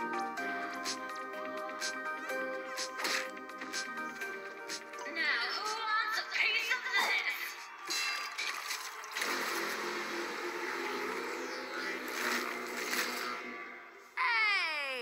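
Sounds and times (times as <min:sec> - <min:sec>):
cartoon music and sound effects: 0:00.0 - 0:15.0
high wailing voice: 0:14.2 - 0:15.0.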